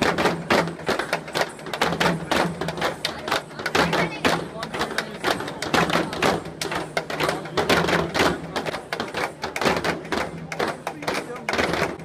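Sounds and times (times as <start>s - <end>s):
frame drums beaten with sticks: 0.0s - 12.0s.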